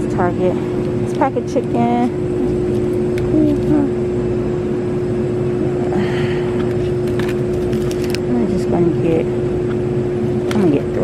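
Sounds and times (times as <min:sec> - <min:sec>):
steady hum: 0:00.0 - 0:11.0
plastic rustling: 0:07.0 - 0:08.3.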